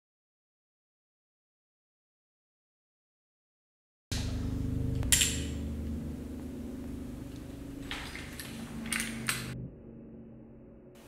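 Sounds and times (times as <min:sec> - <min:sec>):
low room hum: 0:04.1 - 0:11.0.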